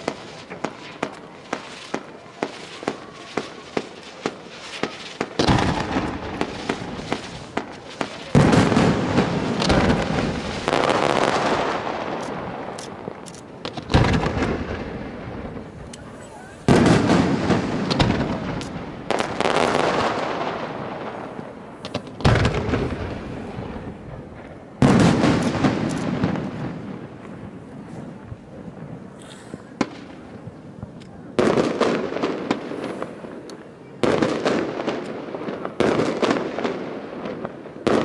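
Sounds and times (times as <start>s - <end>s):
quick firework pops: 12.1s - 14.6s, 17.9s - 19.6s, 21.8s - 22.9s.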